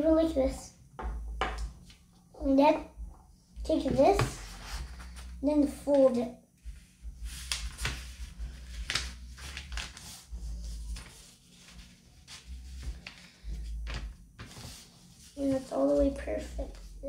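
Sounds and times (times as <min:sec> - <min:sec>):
paper rustling and scraping: 0:04.2 - 0:06.1, 0:07.3 - 0:16.9.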